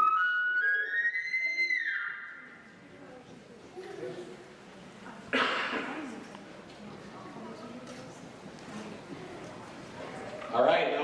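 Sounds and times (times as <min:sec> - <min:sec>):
elk call whistle: 0:00.0 - 0:02.3.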